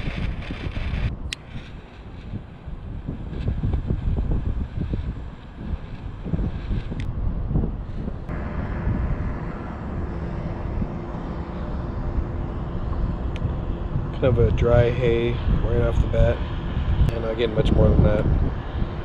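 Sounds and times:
steady engine hum: 0.0s - 19.0s
wind buffeting microphone: 0.0s - 19.0s.

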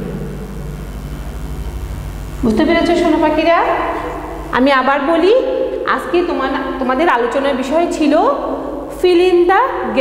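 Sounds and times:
low room hum and rumble: 0.0s - 10.0s.

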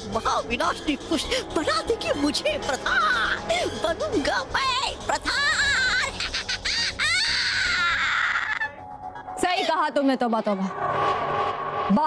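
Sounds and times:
background music: 0.0s - 12.0s
high-pitched cry-like wail: 5.2s - 8.8s.

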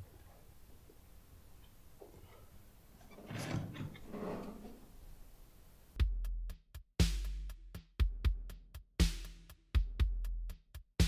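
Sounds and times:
wooden door rattling and scraping: 3.0s - 5.0s.

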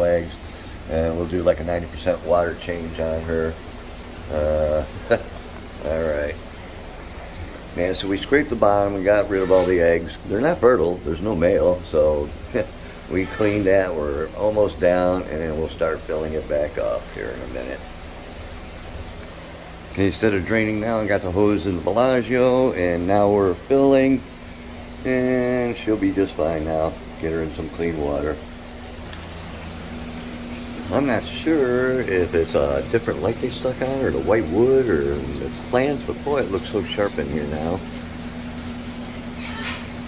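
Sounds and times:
low hum of pump: 0.0s - 40.0s
running water hissing: 0.0s - 40.0s.

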